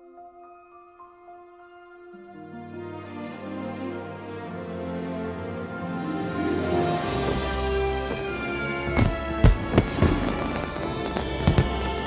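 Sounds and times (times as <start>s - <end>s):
fanfare music with held tones: 2.4s - 12.0s
firework bangs: 7.2s - 12.0s.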